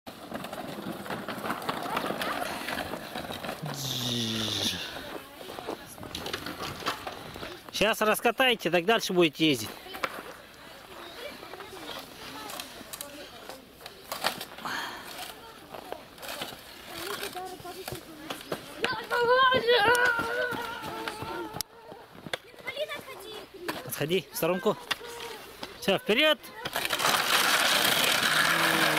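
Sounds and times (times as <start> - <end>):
footsteps crunching snow: 1.1 - 6.2
children's voices outdoors: 1.7 - 8.8, 9.5 - 28.9.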